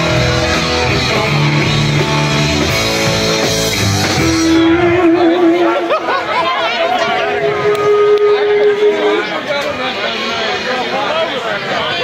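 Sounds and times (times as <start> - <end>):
electric guitar sustained notes: 0.0 - 9.5
rock band playing loudly: 0.0 - 9.8
crowd chatter: 0.0 - 12.0.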